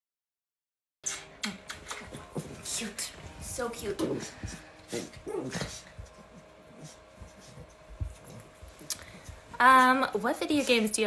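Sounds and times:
dog whining: 4.2s - 8.9s.

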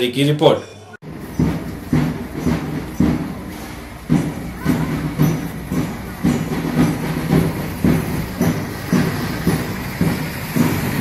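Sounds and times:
marching drums: 1.0s - 11.0s.

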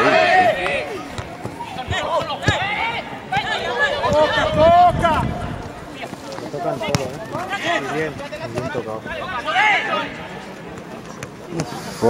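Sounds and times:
men shouting outdoors: 0.0s - 5.6s, 7.3s - 10.2s
football being kicked: 1.1s - 4.6s.

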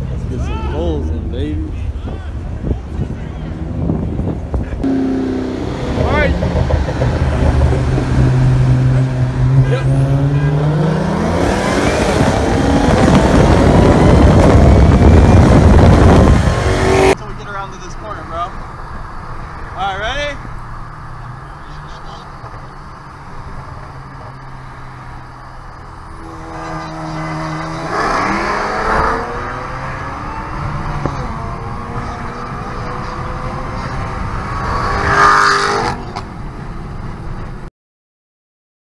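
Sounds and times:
man talking: 0.0s - 3.7s, 6.0s - 6.4s, 19.7s - 20.4s
cars accelerating with roar: 0.0s - 37.4s.

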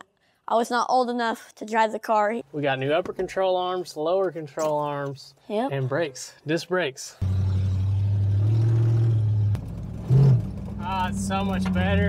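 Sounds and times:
engine and road drone: 7.2s - 12.0s.

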